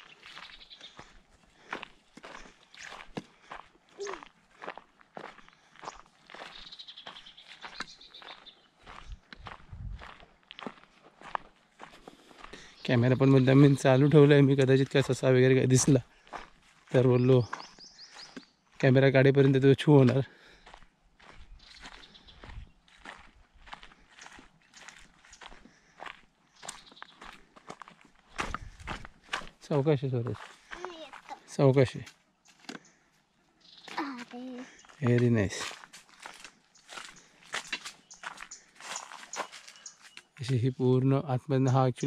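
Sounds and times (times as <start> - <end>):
footsteps on dry dirt path: 0.0 - 40.6.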